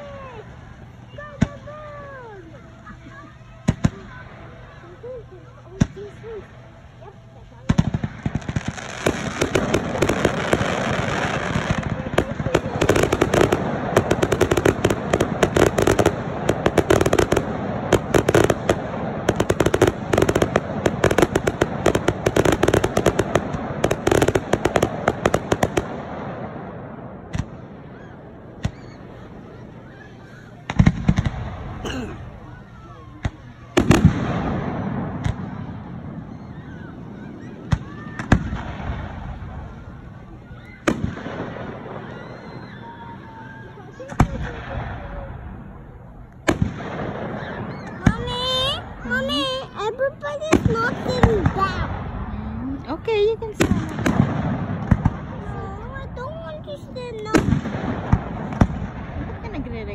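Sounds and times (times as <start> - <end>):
fireworks popping and banging: 1.0 - 43.2, 43.8 - 59.9.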